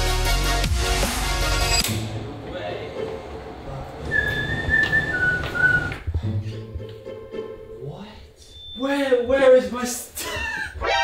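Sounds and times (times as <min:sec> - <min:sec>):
quiet background music: 0:01.7 - 0:04.6, 0:06.1 - 0:09.8
two-note whistle: 0:04.1 - 0:06.1.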